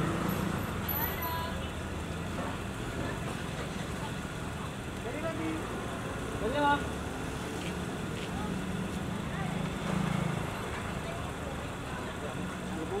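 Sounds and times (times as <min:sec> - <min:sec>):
low hum of vehicles: 0:00.0 - 0:13.0.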